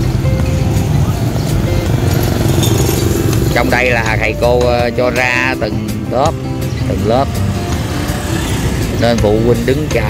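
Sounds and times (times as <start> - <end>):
motorbikes rumbling: 0.0 - 10.0.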